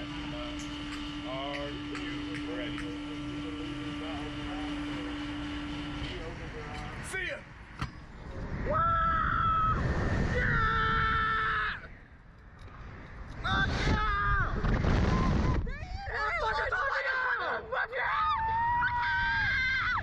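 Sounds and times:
machine hum: 0.0 - 20.0
wind rushing over microphone: 8.1 - 12.0, 12.9 - 16.1
riders screaming: 8.6 - 12.0, 13.4 - 20.0.

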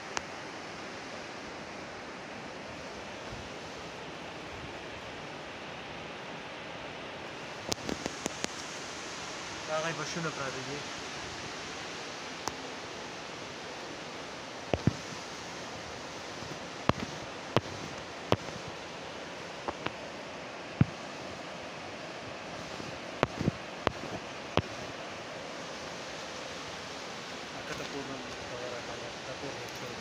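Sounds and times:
river water rushing over rocks: 0.0 - 30.0.

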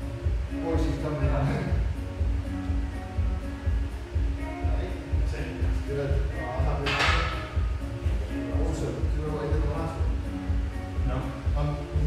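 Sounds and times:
pop music with singing: 0.0 - 12.0
barbell clanging on rack: 6.8 - 7.6.

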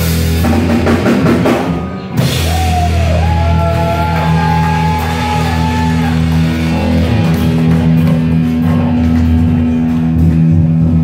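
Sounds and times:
bass guitar sustained notes: 0.0 - 11.0
electric guitar sustained notes: 1.8 - 11.0.

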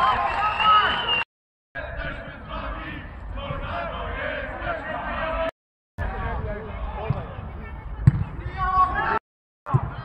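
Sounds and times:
football being kicked: 8.0 - 8.4, 9.7 - 10.0.

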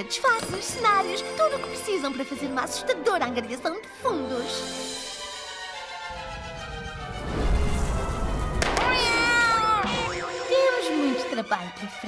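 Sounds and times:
cartoon fire whoosh: 7.0 - 9.7.

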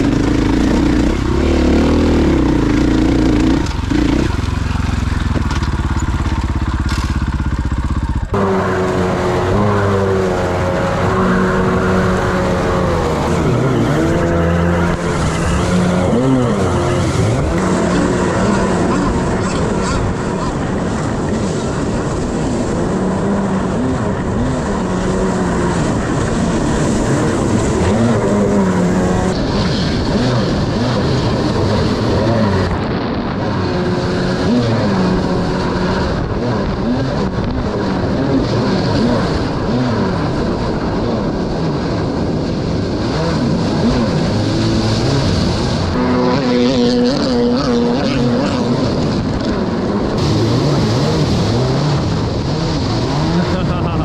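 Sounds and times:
jet ski engine revving: 0.0 - 54.0
rushing water: 9.1 - 54.0.

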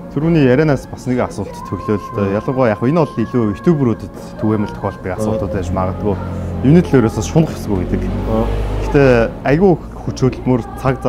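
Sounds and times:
man speaking: 0.2 - 11.0.

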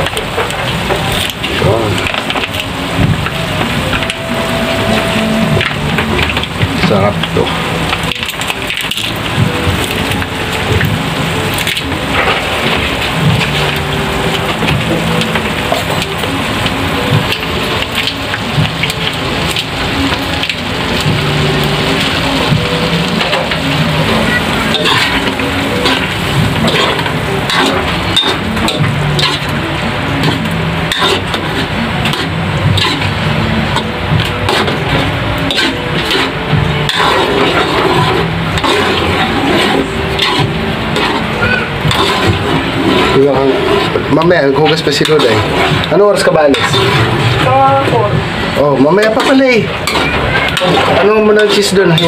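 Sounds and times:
sauce sizzling in a wok: 7.7 - 52.0
spatula scraping a pan: 21.0 - 29.6, 30.2 - 47.4, 49.0 - 52.0.

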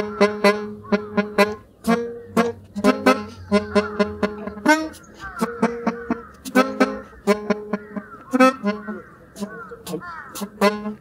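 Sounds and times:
melodica playing short detached notes: 0.0 - 8.8.

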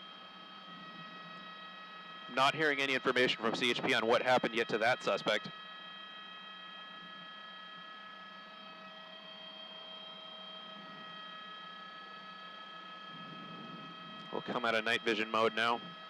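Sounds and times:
helicopter cabin whine: 0.0 - 16.0
low hum: 6.4 - 16.0.

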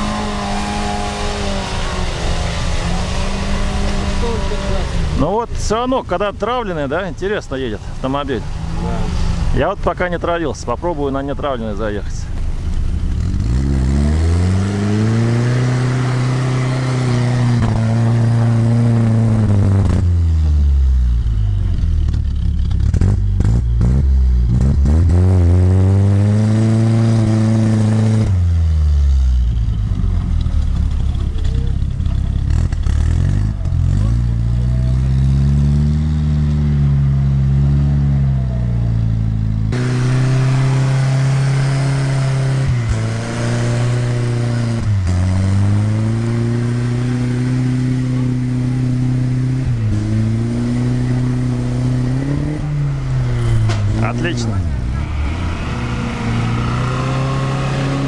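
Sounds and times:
off-road vehicle engine revving: 0.0 - 58.0.

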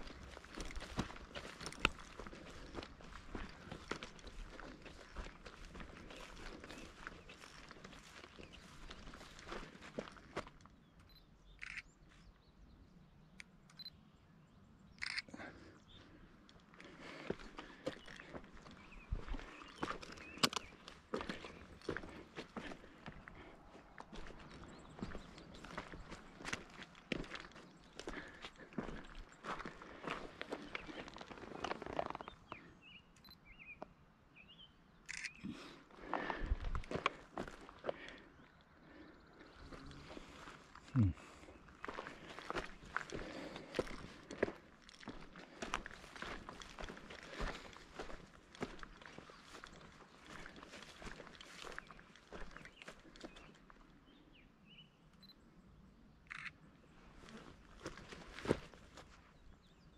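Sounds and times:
footsteps through dry grass: 0.0 - 10.8, 15.0 - 32.7, 35.1 - 54.0, 56.3 - 59.9.

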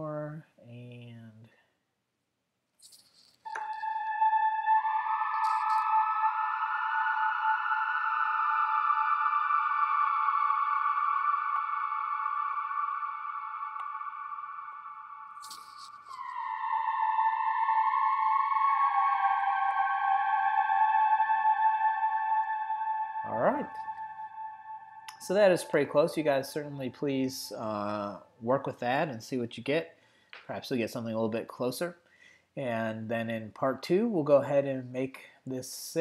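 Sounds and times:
synthesizer lead with reverb: 3.5 - 28.2.

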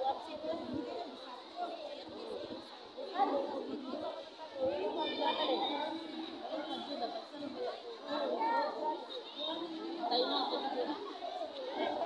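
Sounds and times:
girls chattering: 0.0 - 12.0.

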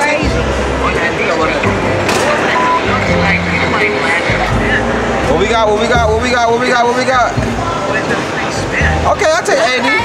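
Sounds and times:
crowd chatter: 0.0 - 10.0
music with deep bass line: 0.0 - 10.0.

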